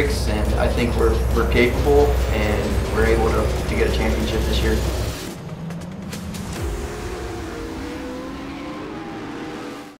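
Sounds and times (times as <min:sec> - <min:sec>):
truck engine revving: 0:00.0 - 0:10.0.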